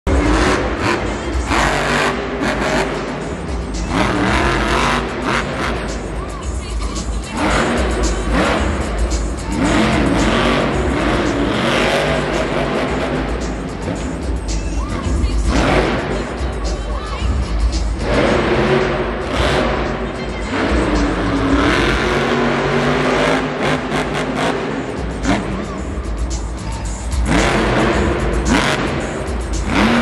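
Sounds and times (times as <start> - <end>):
arena music over loudspeakers: 0.0 - 30.0
monster truck engine revving: 0.0 - 30.0
voice over loudspeakers: 14.5 - 26.0.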